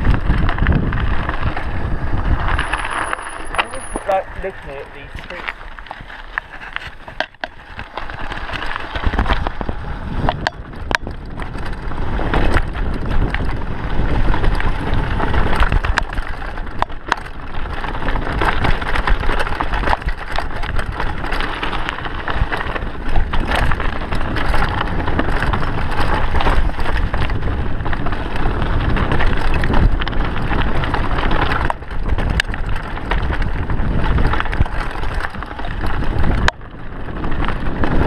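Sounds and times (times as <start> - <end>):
bike rattling over bumps: 0.0 - 38.0
bike tyres crunching over trail: 0.0 - 38.0
wind rumbling on microphone: 0.0 - 38.0.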